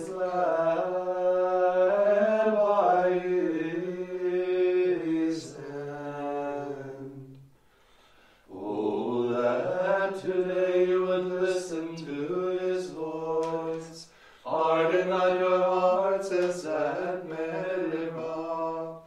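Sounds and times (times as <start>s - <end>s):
plainchant singing: 0.0s - 7.4s, 8.5s - 19.0s.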